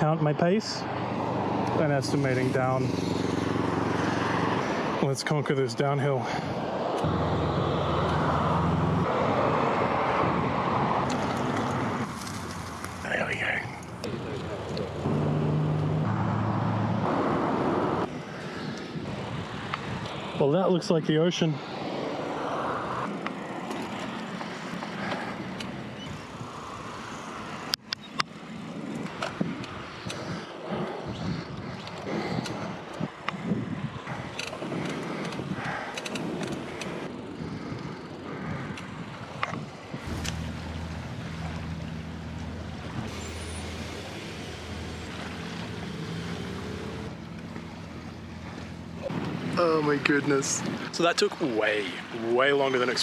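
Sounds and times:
cars passing: 0:00.0 - 0:53.0.

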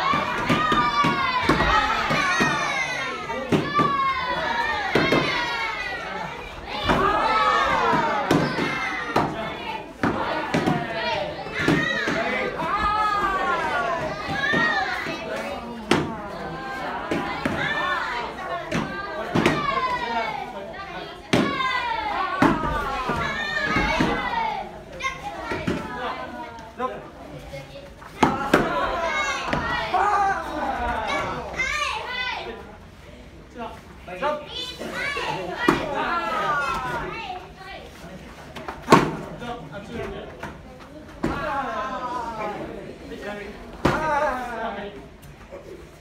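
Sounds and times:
people shouting: 0:00.0 - 0:20.3, 0:21.3 - 0:24.7, 0:28.2 - 0:32.1
people yelling: 0:00.0 - 0:20.4, 0:21.3 - 0:24.7, 0:28.2 - 0:32.2.

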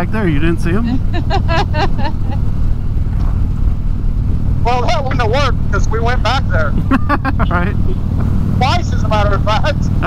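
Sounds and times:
motorcycle engine drone: 0:00.0 - 0:10.0.

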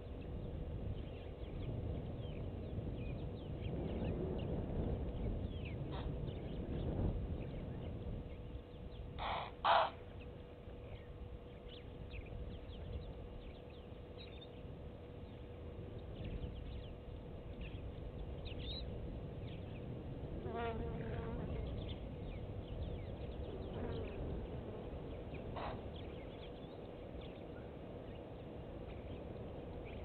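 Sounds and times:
faint steady hum: 0:00.0 - 0:30.0
harsh bird calls: 0:09.2 - 0:10.3.

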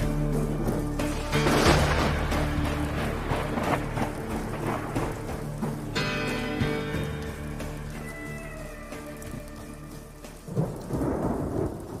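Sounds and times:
low rumble of thunder: 0:00.0 - 0:05.8, 0:10.4 - 0:12.0
rain: 0:00.0 - 0:12.0.

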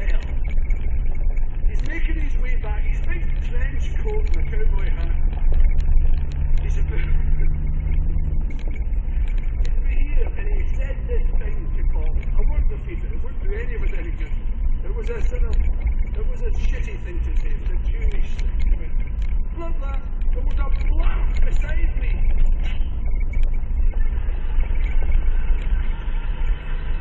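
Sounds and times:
vehicle engine running: 0:00.0 - 0:27.0.

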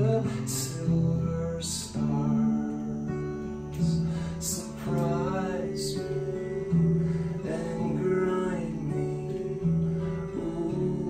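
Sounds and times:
slow guitar music: 0:00.0 - 0:11.0.

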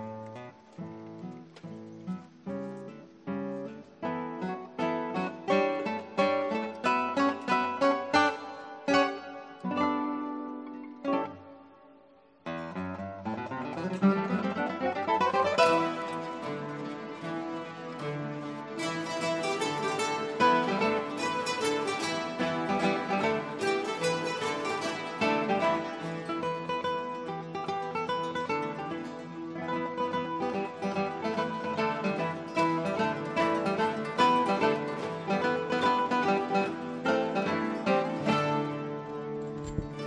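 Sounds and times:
classical guitar ensemble playing: 0:00.0 - 0:40.0.

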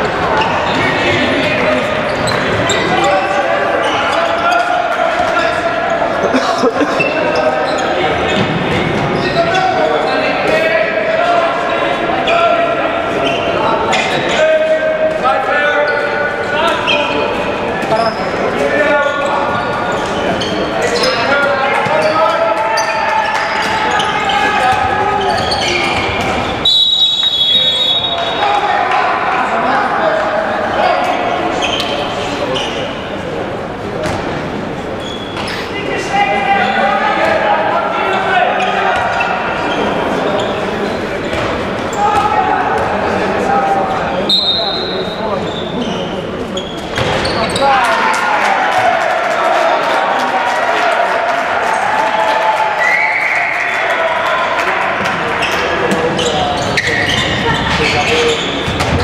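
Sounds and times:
crowd of voices: 0:00.0 - 0:59.0
referee's whistle blast: 0:26.6 - 0:28.4, 0:44.3 - 0:45.1
ball bouncing on court: 0:58.6 - 0:59.0.

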